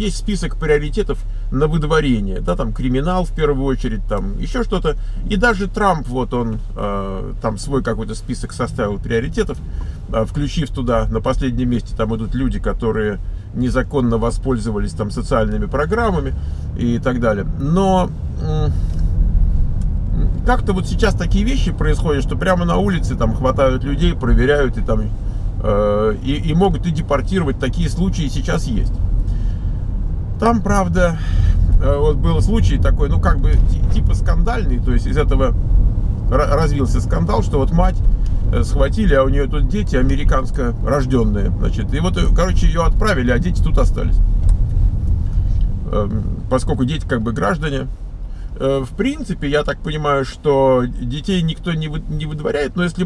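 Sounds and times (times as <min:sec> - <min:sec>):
car engine and tyres rumbling: 0:00.0 - 0:53.0.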